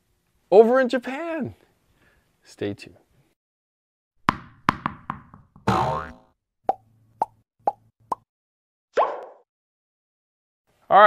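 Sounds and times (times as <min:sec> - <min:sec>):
cartoon pop plops: 0:04.3 - 0:08.3, 0:09.0 - 0:09.4.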